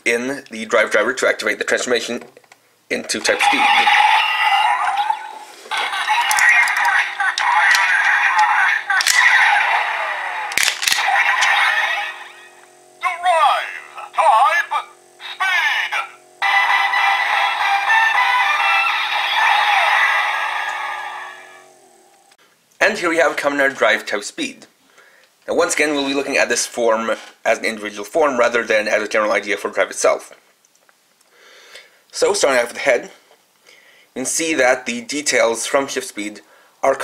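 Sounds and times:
recorded voice calls: 2.9s - 20.4s.

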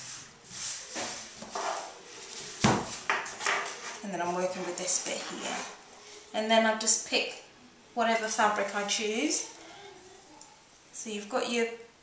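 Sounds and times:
book thud on wooden table: 2.6s - 3.3s.

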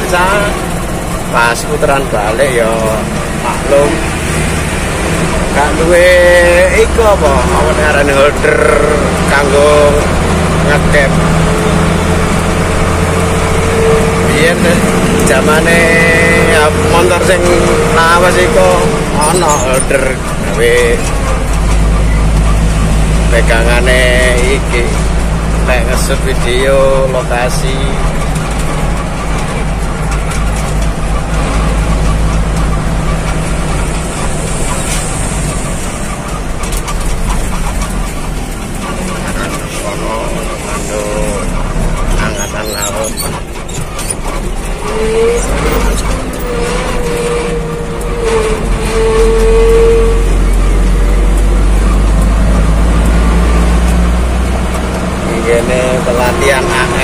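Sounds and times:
road noise inside cab: 0.0s - 57.0s
truck engine running: 0.0s - 57.0s.

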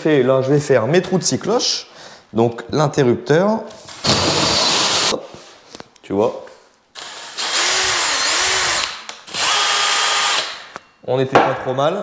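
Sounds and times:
drill cutting plasterboard: 4.0s - 5.1s, 7.0s - 10.6s.

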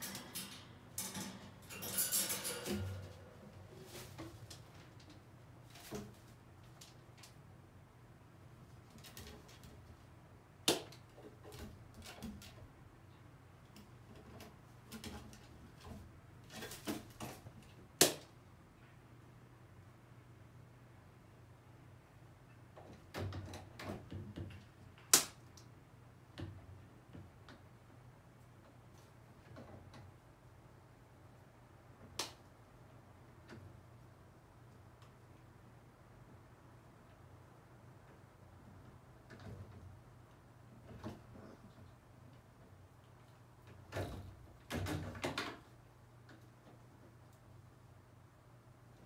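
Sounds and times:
low steady hum: 0.0s - 9.0s.

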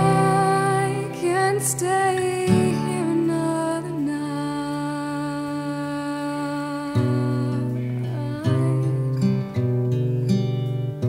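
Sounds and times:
slow sad song: 0.0s - 11.0s.

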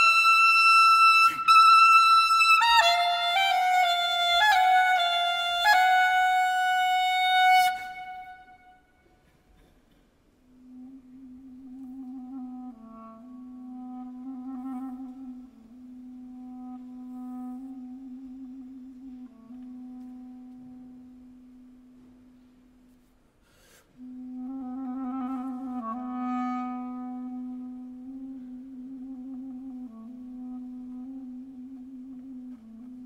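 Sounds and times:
solo clarinet: 0.0s - 9.2s, 10.5s - 22.4s, 23.8s - 33.0s.

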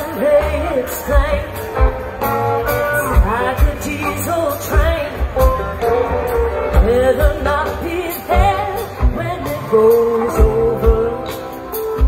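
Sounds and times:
drum kit with kick drum: 0.0s - 12.0s
woman singing lead melody: 0.0s - 12.0s.

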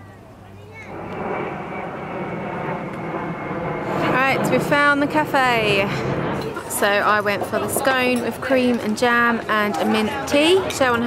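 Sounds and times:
high engine whine: 0.0s - 11.0s
jet airliner passing overhead: 0.0s - 11.0s.

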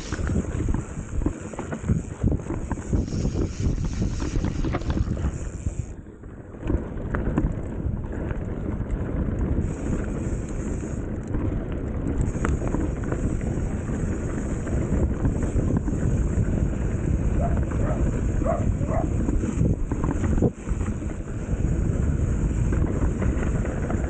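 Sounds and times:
bike clicks and rattles: 0.0s - 24.0s
bike tyres rolling on dirt: 0.0s - 24.0s
wind buffeting microphone: 0.0s - 24.0s.

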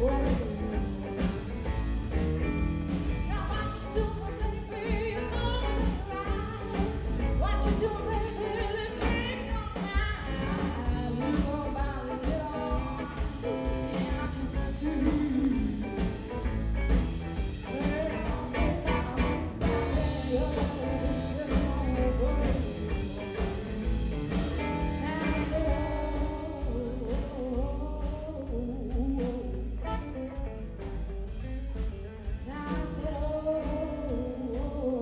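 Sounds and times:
person singing: 0.0s - 1.5s, 3.3s - 16.5s, 17.6s - 30.5s, 32.4s - 35.0s
electric guitar: 0.0s - 35.0s
live blues band playing: 0.0s - 35.0s.

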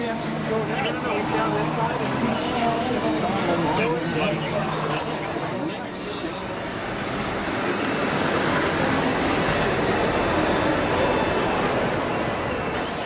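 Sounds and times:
city street traffic: 0.0s - 13.0s.

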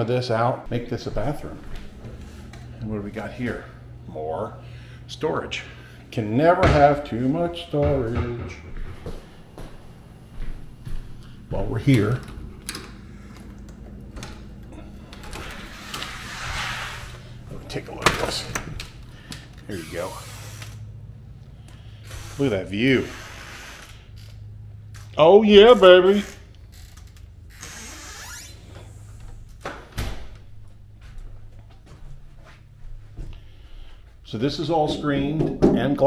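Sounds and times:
sliding glass door rolling: 13.8s - 18.5s
door squeak: 26.2s - 29.0s.

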